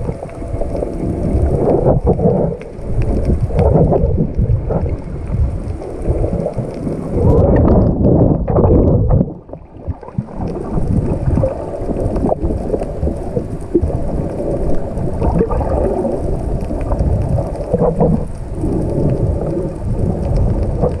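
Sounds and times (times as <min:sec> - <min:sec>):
underwater crackling and ticking: 0:00.0 - 0:21.0
underwater rumble of moving water: 0:00.0 - 0:21.0.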